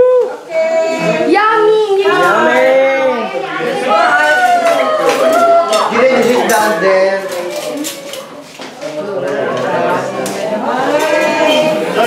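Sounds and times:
people talking: 0:00.0 - 0:12.0
spoons and plates clinking: 0:04.4 - 0:08.6, 0:10.8 - 0:12.0.

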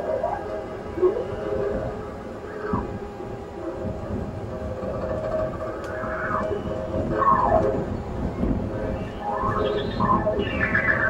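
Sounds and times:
layered drone with pitch glides: 0:00.0 - 0:11.0.

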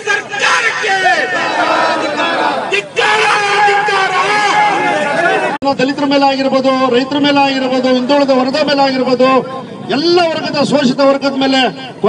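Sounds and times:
crowd shouting slogans: 0:00.0 - 0:05.6.

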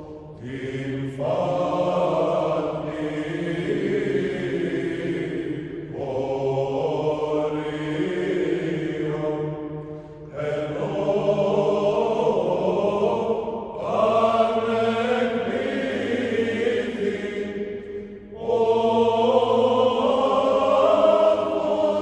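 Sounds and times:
voices singing a chant: 0:00.0 - 0:22.0.

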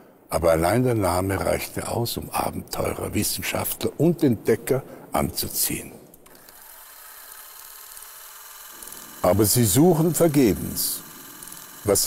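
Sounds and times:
film projector whirring: 0:06.2 - 0:12.0.

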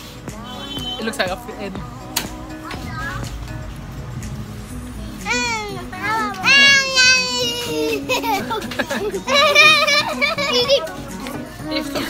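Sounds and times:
voices: 0:00.3 - 0:12.0.

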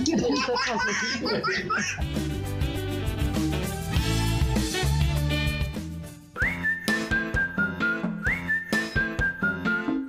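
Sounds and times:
whistled jingle over light beat: 0:06.3 - 0:10.0.

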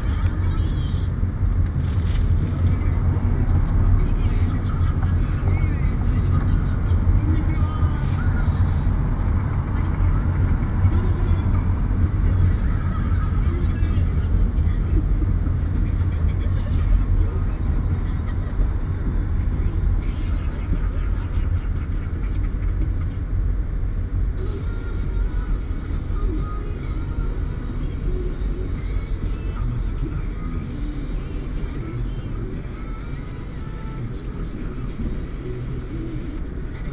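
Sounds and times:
car engine and tyres rumbling: 0:00.0 - 0:36.9.

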